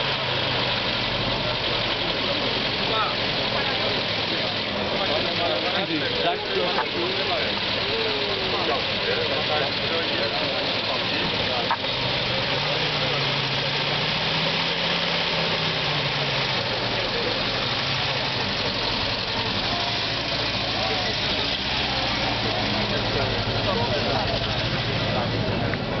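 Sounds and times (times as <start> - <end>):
car engine running at low revs: 0.0 - 26.0
crowd chatter: 0.0 - 26.0.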